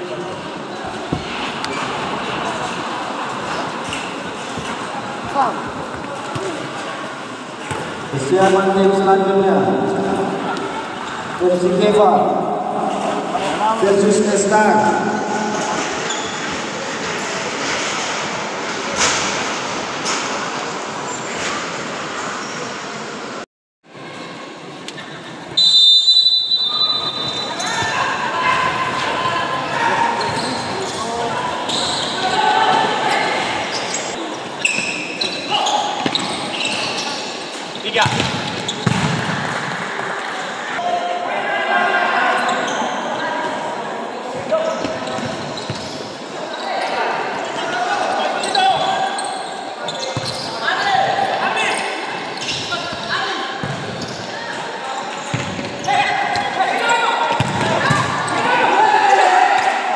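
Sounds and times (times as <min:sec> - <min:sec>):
ball kicked and bouncing: 0:38.0 - 0:39.3
players shouting: 0:55.8 - 0:59.9.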